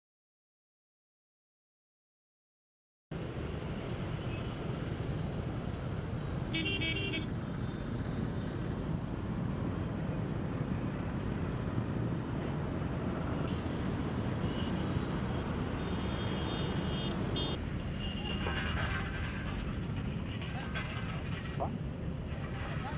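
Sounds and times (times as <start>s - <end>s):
road traffic rumble: 3.1s - 22.9s
vehicle horn toot: 6.5s - 7.3s, 15.8s - 18.3s.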